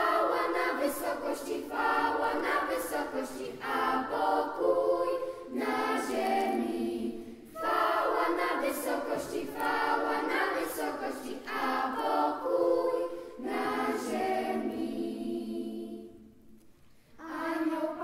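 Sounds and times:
children's choir singing a cappella: 0.0 - 18.0.

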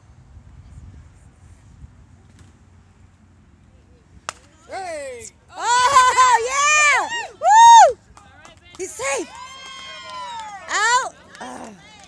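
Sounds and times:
spectators yelling and cheering: 4.7 - 8.0, 8.8 - 12.0.

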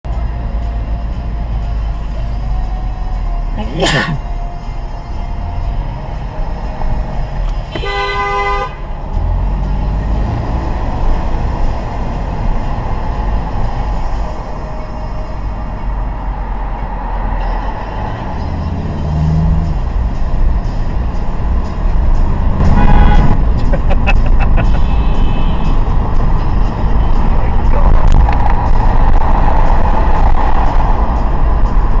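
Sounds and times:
road and engine noise in car: 0.0 - 32.0
car horn honking: 7.6 - 9.0, 22.5 - 26.1.

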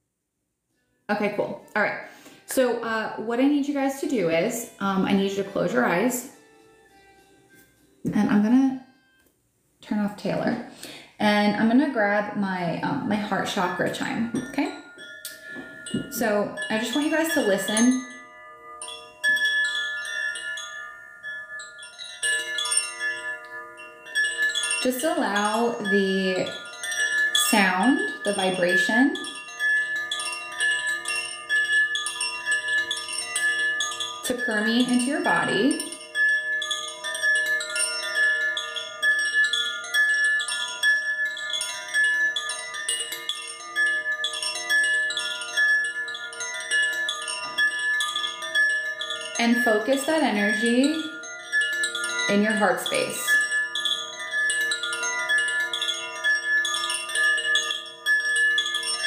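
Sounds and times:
metal tube chime ringing: 13.2 - 59.0.

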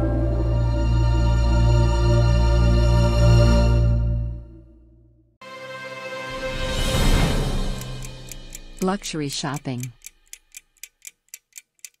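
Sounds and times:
faint steady ticking: 7.5 - 12.0.

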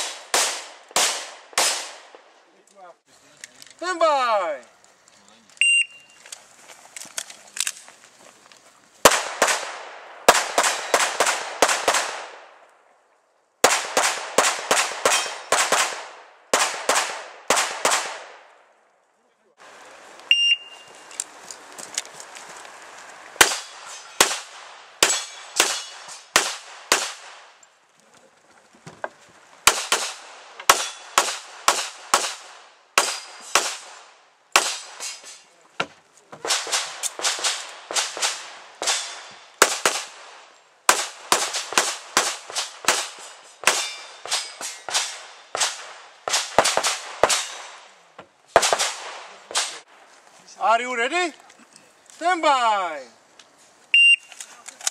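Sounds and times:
pistol shots: 0.0 - 2.2, 9.1 - 12.5, 13.6 - 18.5, 23.4 - 27.5, 29.6 - 35.1, 36.4 - 47.8, 48.6 - 49.8
shot timer beep: 5.6 - 6.1, 20.3 - 20.8, 54.0 - 54.3.

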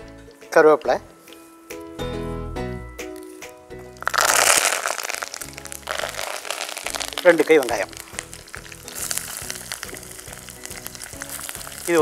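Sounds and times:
background music: 0.0 - 12.0
hot oil sizzling and crackling: 3.8 - 12.0.

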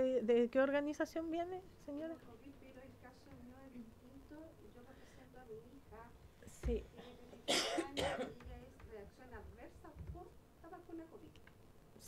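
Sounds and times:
person coughing into microphone: 6.9 - 8.5.

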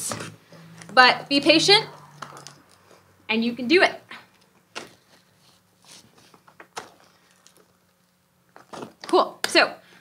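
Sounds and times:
fabric rustling: 4.3 - 9.0.

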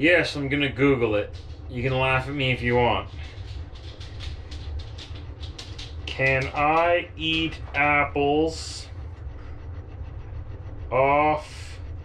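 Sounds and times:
low mechanical rumble: 0.0 - 12.0
fast regular ticking: 0.1 - 12.0.

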